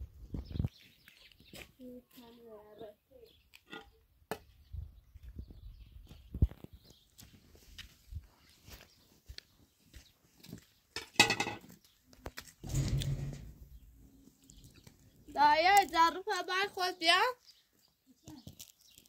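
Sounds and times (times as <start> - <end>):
footsteps on dry dirt: 5.0 - 10.9.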